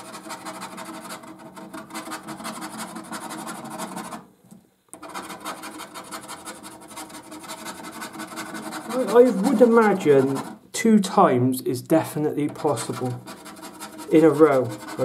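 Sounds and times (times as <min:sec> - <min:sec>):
scratchcard being scratched: 0:00.0 - 0:04.2, 0:05.0 - 0:10.6, 0:12.4 - 0:15.0.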